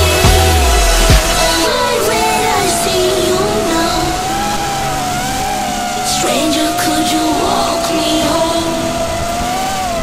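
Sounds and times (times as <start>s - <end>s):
quadcopter motors whining: 0.0s - 10.0s.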